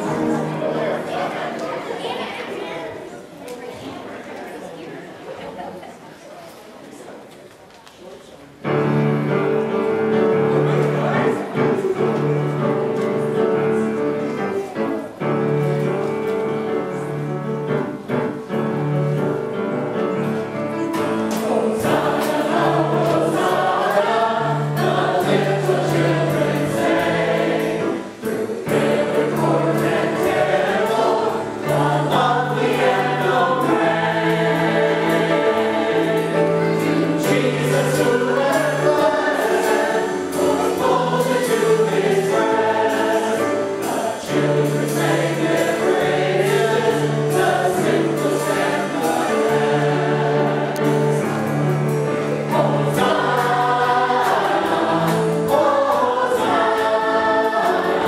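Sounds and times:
church choir singing a hymn: 0.0s - 3.1s, 8.7s - 58.0s
instrumental accompaniment: 8.7s - 58.0s.

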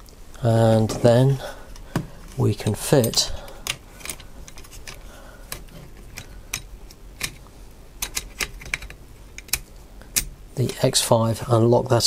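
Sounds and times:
plastic and metal parts clicking: 3.1s - 10.3s.

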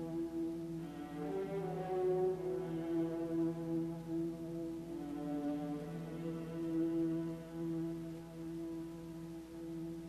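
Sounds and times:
orchestra playing slow chords: 0.0s - 10.0s.

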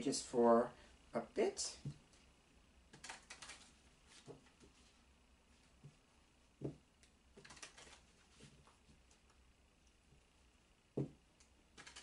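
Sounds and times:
cards being shuffled: 7.4s - 8.8s.

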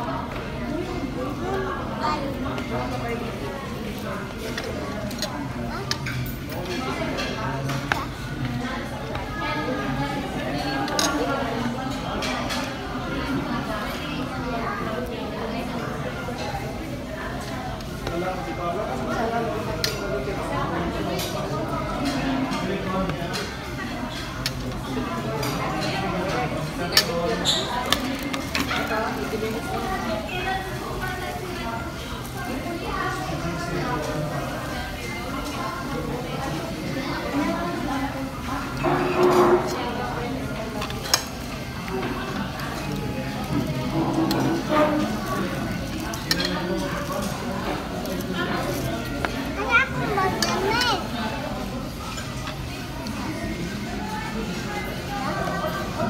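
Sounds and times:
restaurant chatter: 0.0s - 56.0s
dishes and cutlery clinking: 4.4s - 8.2s, 10.6s - 12.8s, 21.1s - 30.5s, 38.4s - 49.5s.

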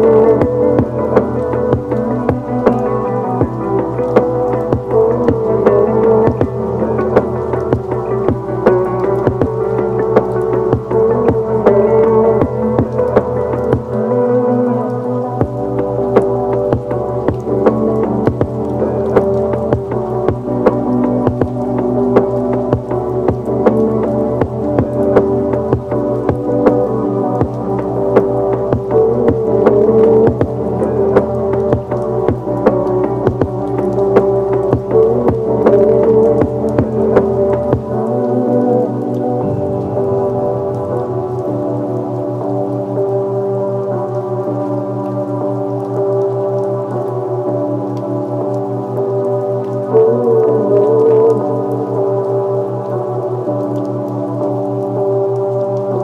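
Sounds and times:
deep bass: 0.0s - 14.1s, 15.4s - 42.8s
ambient sustained tones: 0.0s - 43.9s
rain patter: 0.0s - 56.0s.

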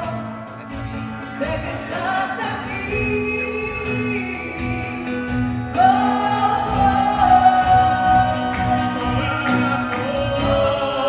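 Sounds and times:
voices holding sung notes: 0.0s - 11.0s
worship band playing: 0.0s - 11.0s.

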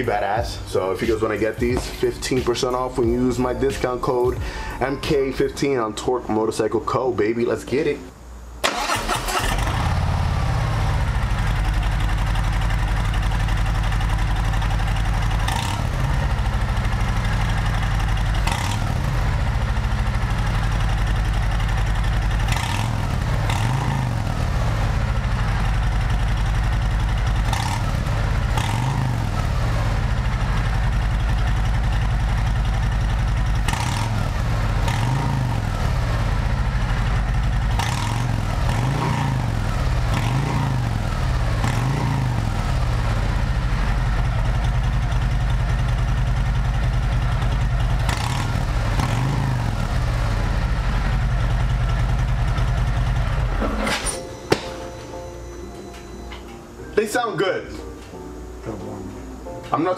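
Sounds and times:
motorcycle engine idling and revving: 0.0s - 3.5s, 8.7s - 55.0s.

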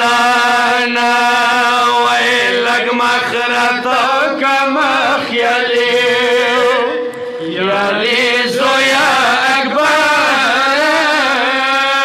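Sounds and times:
steady held drone: 0.0s - 11.7s
men chanting into a microphone: 0.0s - 12.0s.

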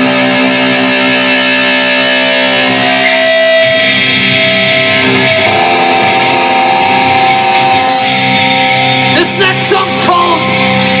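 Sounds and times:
distorted electric guitar chord: 0.0s - 11.0s
heavy metal band: 0.0s - 11.0s.

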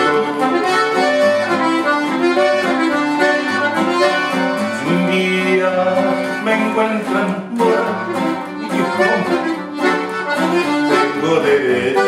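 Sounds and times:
button accordion playing: 0.0s - 12.0s
guitar accompaniment: 0.0s - 12.0s.

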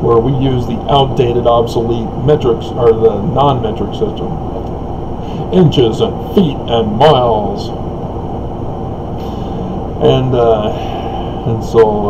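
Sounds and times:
steady background rumble: 0.0s - 12.0s.

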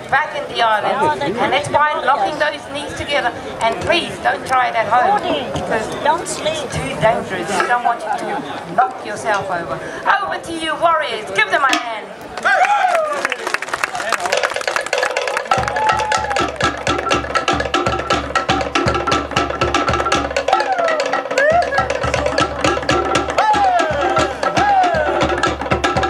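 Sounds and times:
log drums rolling: 0.0s - 26.0s
deep drum beating: 14.3s - 26.0s
gliding shouted calls: 20.4s - 25.5s.

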